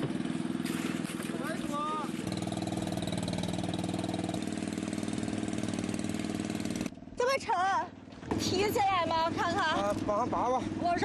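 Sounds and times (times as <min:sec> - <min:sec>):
boat engine running: 0:00.0 - 0:11.0.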